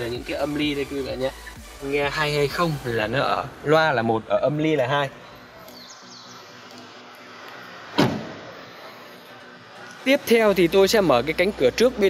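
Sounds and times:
car door shutting thud: 7.9 - 8.5.

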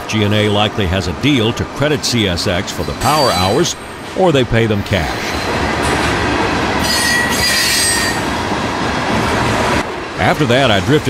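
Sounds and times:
train wheels on rails: 0.0 - 11.0
high wheel squeal: 2.7 - 4.1, 6.8 - 8.4.

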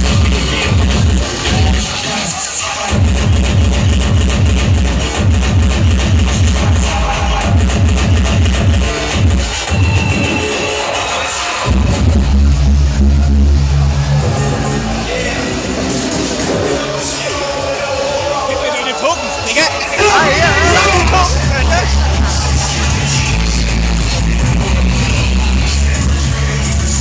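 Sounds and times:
hardcore electronic dance music: 0.0 - 27.0.

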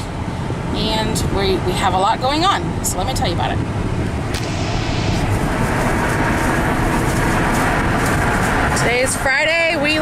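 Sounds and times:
faint engine hum: 0.0 - 10.0
road and wind noise: 0.0 - 10.0.

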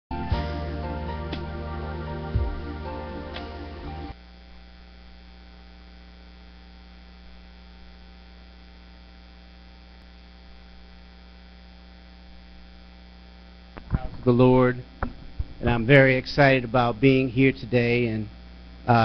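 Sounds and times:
electrical mains hum: 0.1 - 19.0.

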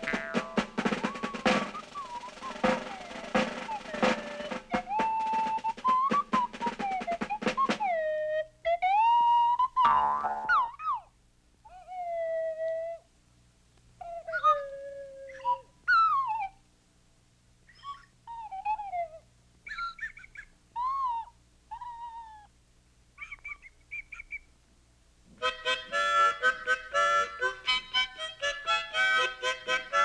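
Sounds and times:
sliding whistle-like tones: 0.0 - 8.1.

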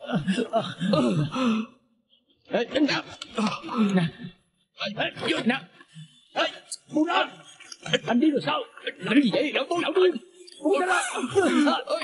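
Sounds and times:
man grunting and straining: 0.0 - 1.8.

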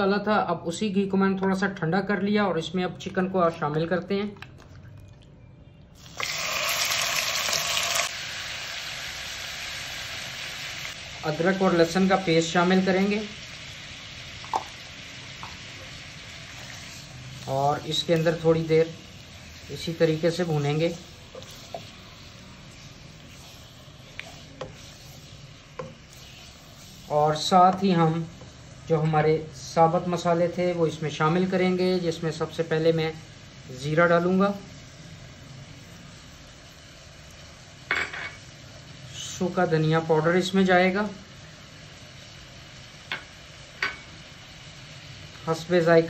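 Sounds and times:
chicken sizzling in pan: 6.0 - 46.0.

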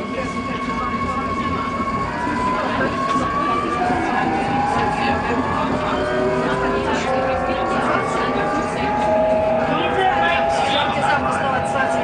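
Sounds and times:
tram rumbling on track: 0.0 - 12.0
whining tones gliding in pitch: 0.0 - 12.0.

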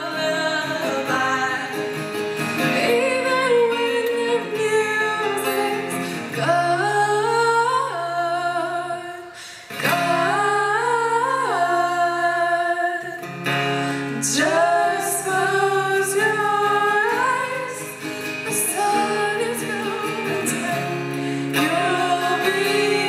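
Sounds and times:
women singing in harmony: 0.0 - 2.0, 2.6 - 13.2, 14.1 - 23.0
acoustic guitar: 0.0 - 23.0.

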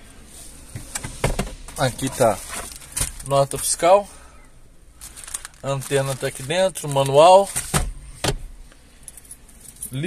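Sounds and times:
things clattering in glove compartment: 0.7 - 3.8, 5.0 - 8.5.

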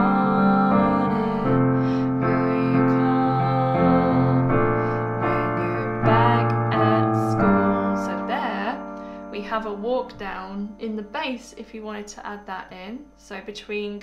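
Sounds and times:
piano chords: 0.0 - 13.4.

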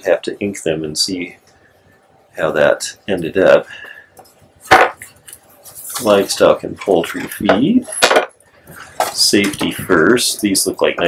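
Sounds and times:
boards clacking together: 4.7 - 5.0.

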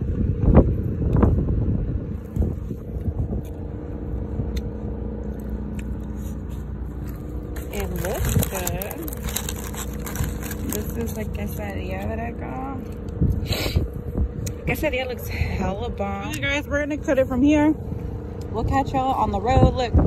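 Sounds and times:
steady low hum: 0.0 - 20.0
paper bag rustling: 7.0 - 11.8
plastic fork scraping styrofoam box: 7.6 - 11.7.

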